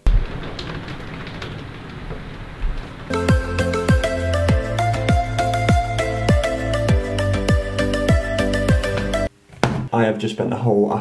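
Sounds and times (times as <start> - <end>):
hiss of rain: 0.0 - 5.8.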